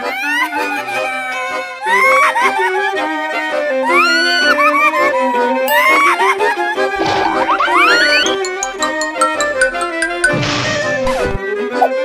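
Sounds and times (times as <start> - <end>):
playful comic music: 3.9 - 12.0.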